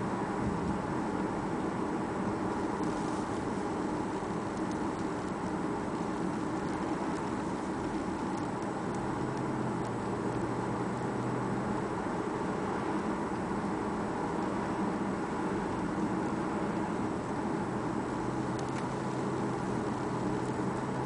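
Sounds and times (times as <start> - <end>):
car engine hum: 0.0 - 21.0
road noise: 0.0 - 21.0.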